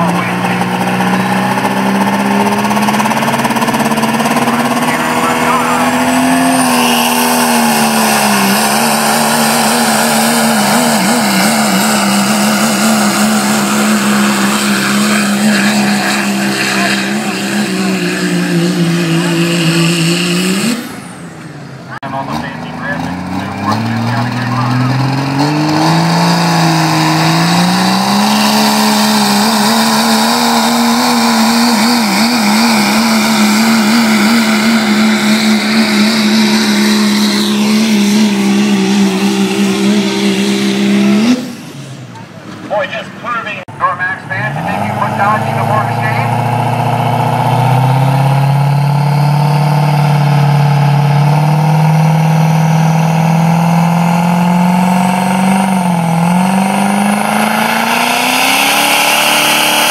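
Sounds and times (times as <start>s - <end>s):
diesel truck engine at full throttle: 0.0s - 59.9s.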